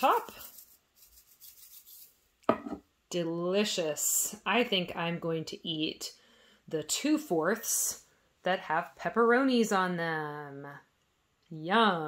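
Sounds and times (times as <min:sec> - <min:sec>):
toy cheese shaker rubbing and tapping: 0:00.0 - 0:02.4.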